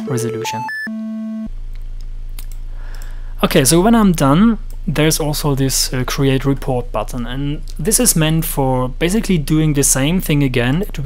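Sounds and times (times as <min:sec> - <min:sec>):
synthesizer triangle wave tone: 0:00.0 - 0:01.5
low steady hum: 0:01.4 - 0:11.0.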